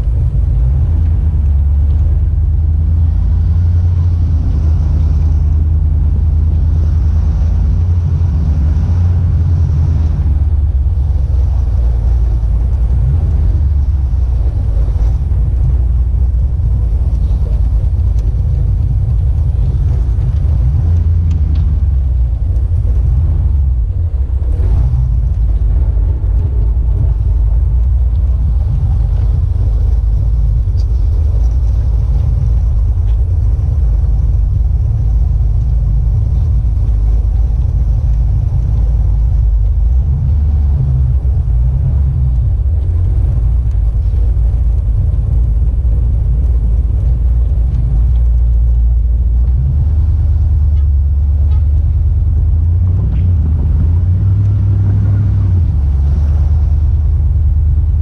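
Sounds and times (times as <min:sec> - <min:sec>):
truck engine and road rumble: 0:00.0 - 0:58.0.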